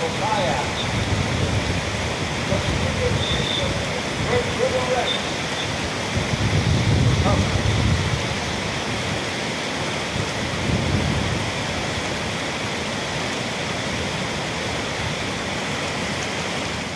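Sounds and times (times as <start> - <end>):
low water rumble: 0.0 - 16.9
river rapids rushing: 0.0 - 16.9.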